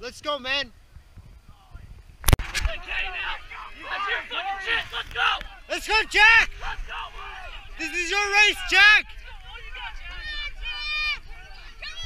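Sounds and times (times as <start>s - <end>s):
spectators shouting and cheering: 2.6s - 12.0s.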